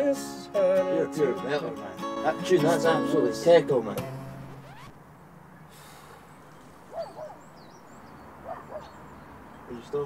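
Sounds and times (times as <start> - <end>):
faint outdoor background: 0.0 - 10.0
small birds chirping: 4.5 - 10.0.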